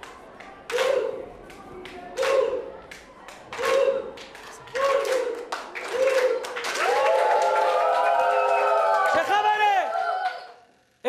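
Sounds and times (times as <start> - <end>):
children clapping in rhythm: 0.0 - 9.4
children chanting: 0.7 - 1.3, 2.1 - 6.6.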